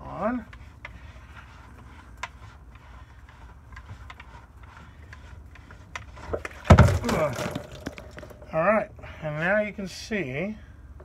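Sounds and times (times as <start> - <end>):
heavy thump: 6.6 - 8.3.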